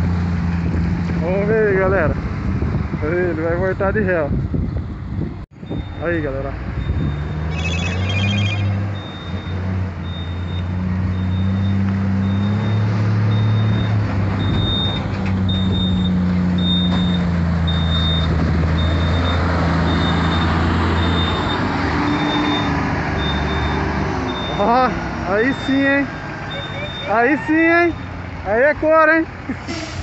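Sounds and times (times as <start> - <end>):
truck diesel engine running: 5.8 - 30.0
reversing alarm beeps: 6.8 - 24.7, 26.5 - 27.2.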